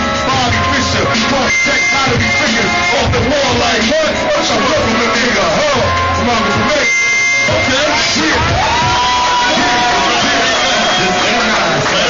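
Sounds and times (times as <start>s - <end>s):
live hip-hop music: 0.0s - 12.0s
man rapping on a microphone: 0.0s - 12.0s.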